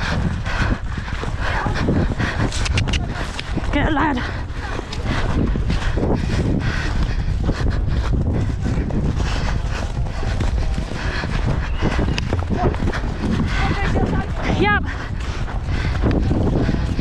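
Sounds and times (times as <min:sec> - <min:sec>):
horse hoofbeats on grass: 0:00.0 - 0:17.0.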